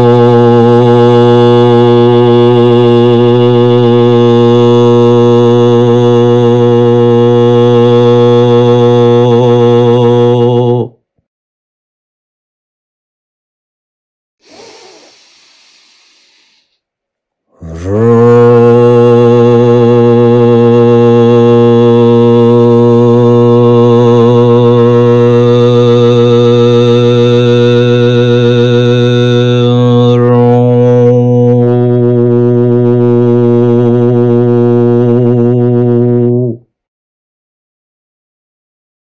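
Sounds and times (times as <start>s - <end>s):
man chanting low note: 0.0s - 11.0s, 17.6s - 36.7s.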